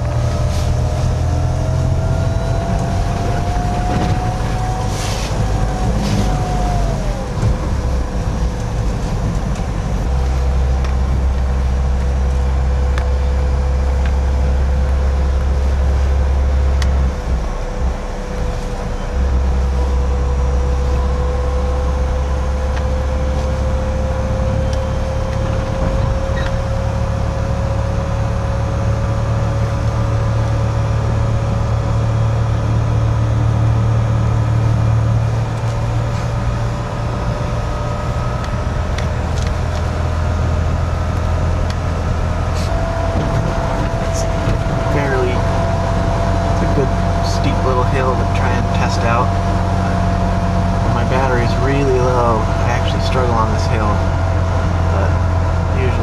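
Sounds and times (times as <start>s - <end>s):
electric motor whine: 0.0s - 56.0s
road and wind rumble: 0.0s - 56.0s.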